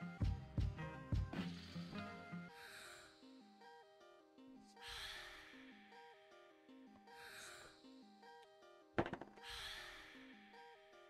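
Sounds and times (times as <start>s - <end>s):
quiet background music: 0.0s - 11.0s
plastic marker put down on mat: 9.0s - 9.4s.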